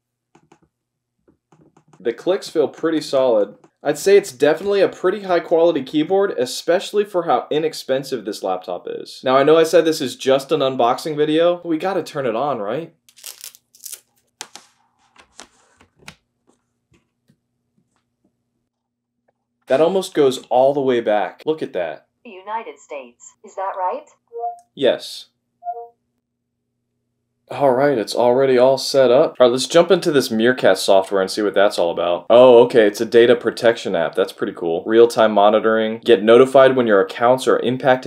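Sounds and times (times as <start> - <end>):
cord rustling: 13.1 - 19.4.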